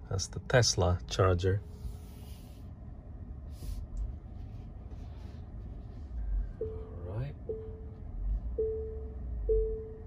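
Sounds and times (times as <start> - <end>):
car proximity warning beeps: 6.2 - 10.0.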